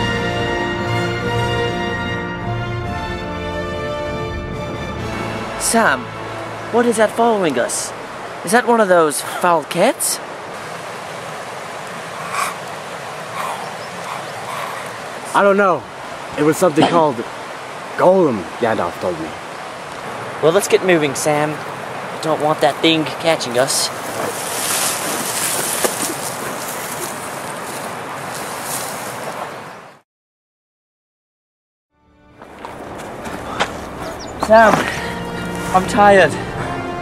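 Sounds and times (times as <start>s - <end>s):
rushing outdoor background noise: 4.6s - 30.0s, 32.4s - 37.0s.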